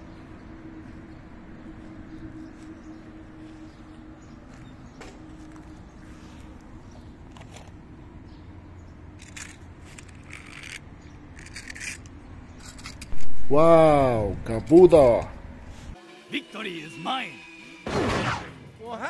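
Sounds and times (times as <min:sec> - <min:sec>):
faint outdoor background: 0:00.0 - 0:19.0
toy car rustling and scraping: 0:09.2 - 0:13.3.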